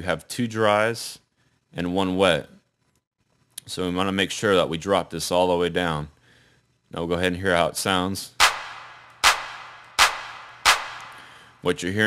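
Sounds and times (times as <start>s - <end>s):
hand clap with reverb tail: 8.4s - 11.2s.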